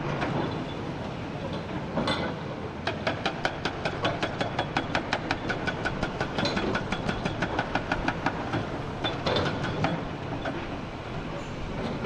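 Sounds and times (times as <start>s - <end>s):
excavator engines running: 0.0s - 12.0s
hydraulic breaker hammering rock: 2.8s - 10.7s.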